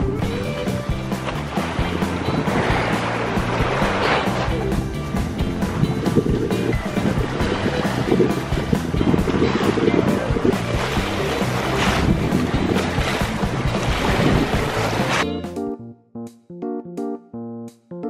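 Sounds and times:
waves splashing against sea wall: 0.0 - 15.2
piano music: 0.0 - 18.0
wind buffeting microphone: 1.4 - 15.2.

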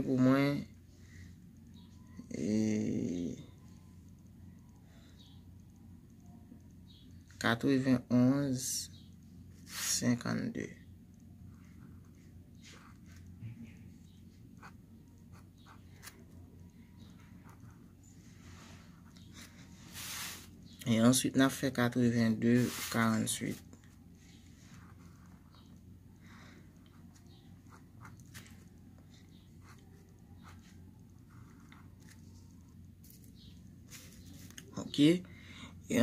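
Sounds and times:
faint low room hum: 0.0 - 36.0
man's wordless hesitating voice: 2.2 - 3.6
pen scratching on paper: 11.5 - 13.3, 14.6 - 16.2, 17.0 - 20.5, 24.5 - 25.7, 29.3 - 32.2.

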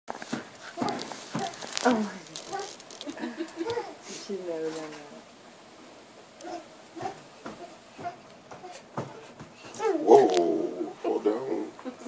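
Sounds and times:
toddler feet thumping on carpet: 0.2 - 2.7, 6.4 - 10.4.

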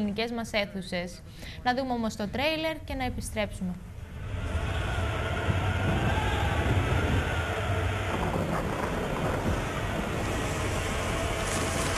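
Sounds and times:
rushing roar: 4.0 - 11.9.

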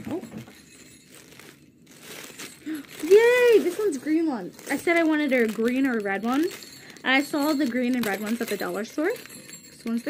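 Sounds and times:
tissue paper rustling: 0.0 - 9.4.

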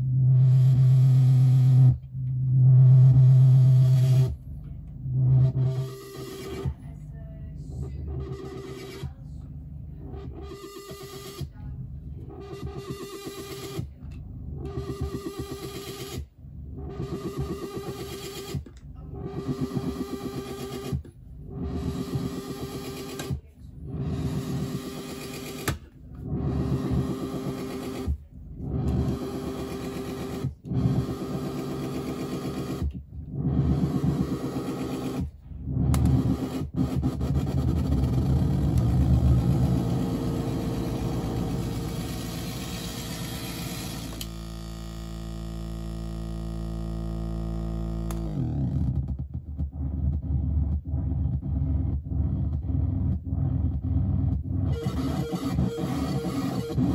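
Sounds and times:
continuous low synth rumble: 0.0 - 15.7, 16.3 - 25.1, 25.8 - 56.9
pulsing buzzing synth drone: 0.0 - 56.9.

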